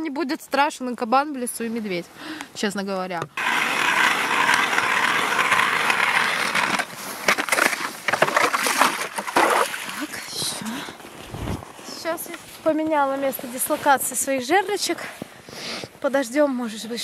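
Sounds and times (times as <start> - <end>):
ice auger drilling into ice: 3.4 - 10.6.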